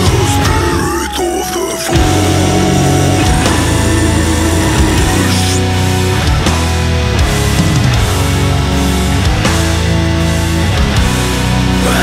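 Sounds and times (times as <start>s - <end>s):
metal guitars and bass chords: 0.0s - 12.0s.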